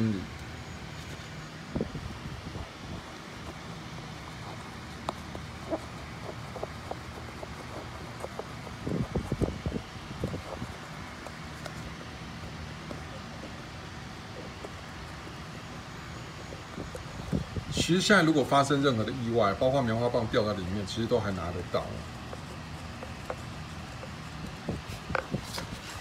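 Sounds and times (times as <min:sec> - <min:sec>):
steady low hum: 0:00.0 - 0:26.0
cotton swab rubbing: 0:02.6 - 0:17.9, 0:21.6 - 0:26.0.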